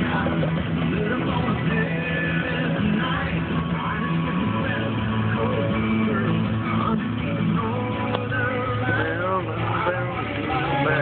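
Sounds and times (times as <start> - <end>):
music: 0.0 - 11.0
man talking: 8.9 - 11.0.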